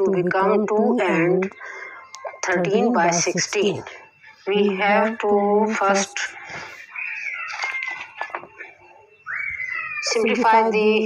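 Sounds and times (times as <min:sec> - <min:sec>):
high-pitched animal call: 0:09.3 - 0:10.8.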